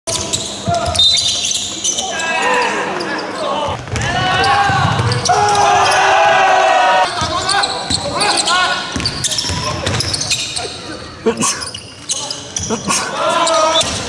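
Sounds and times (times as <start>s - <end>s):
shoes squeaking: 0.1s - 3.8s, 7.0s - 14.0s
basketball bouncing on wooden floor: 8.9s - 10.2s
people calling out: 10.6s - 14.0s.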